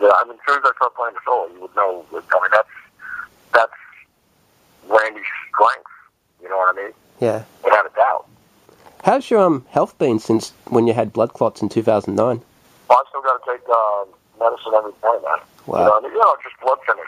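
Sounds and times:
man talking over telephone: 0:00.0 - 0:04.1, 0:04.8 - 0:08.3, 0:09.0 - 0:17.0.

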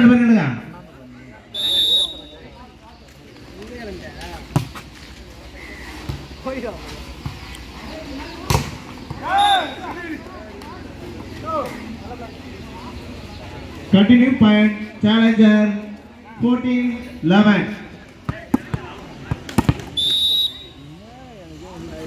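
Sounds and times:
referee's whistle blast: 0:01.5 - 0:02.4, 0:09.3 - 0:09.8, 0:20.0 - 0:20.8
players shouting: 0:08.5 - 0:12.0.

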